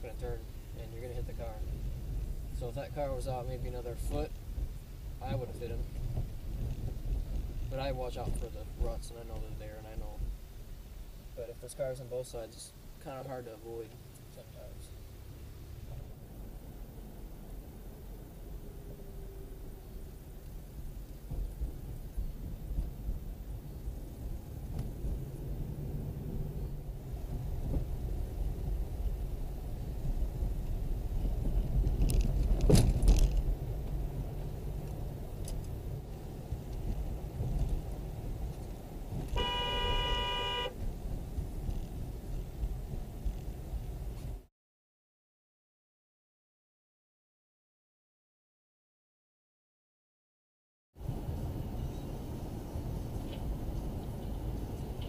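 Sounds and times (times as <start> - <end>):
car road and engine rumble: 0.0 - 44.5, 51.0 - 55.0
car horn: 39.3 - 40.8.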